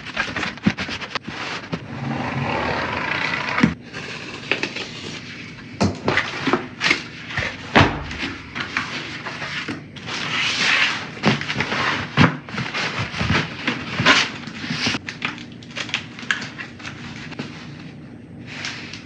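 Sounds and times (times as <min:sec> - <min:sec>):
cardboard sheets scraping and rustling: 0:00.0 - 0:05.5, 0:06.2 - 0:15.1.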